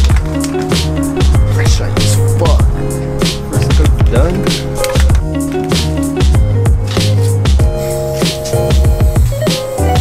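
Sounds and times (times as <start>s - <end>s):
background music with bass and drums: 0.0s - 10.0s.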